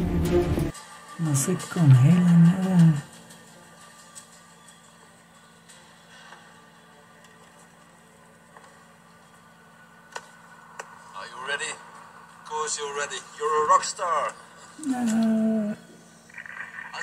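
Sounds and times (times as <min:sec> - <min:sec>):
wavering voice-like sound: 0:14.8 - 0:17.0.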